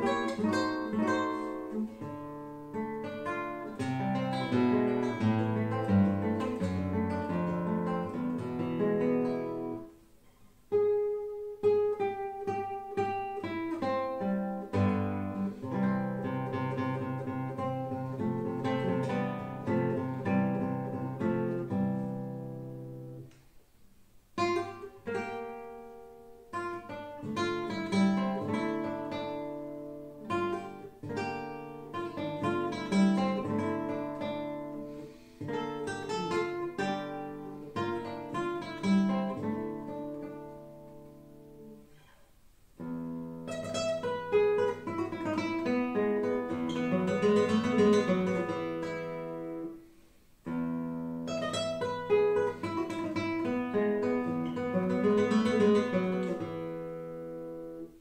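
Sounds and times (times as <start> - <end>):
classical guitar fingerpicking: 0.0 - 58.0.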